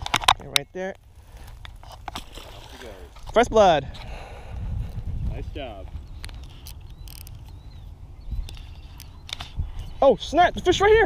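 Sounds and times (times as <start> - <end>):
fishing reel clicks and knocks: 6.2 - 7.4.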